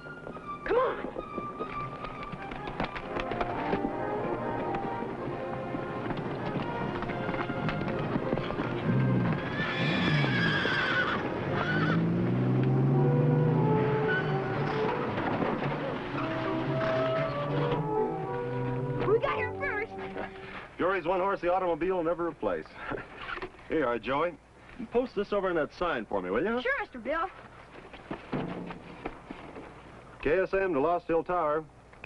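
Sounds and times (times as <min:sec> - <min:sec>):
horse galloping: 0:00.0 - 0:12.3, 0:14.5 - 0:20.5, 0:26.7 - 0:30.2
horse neighing: 0:08.4 - 0:12.2
music score: 0:11.3 - 0:20.6.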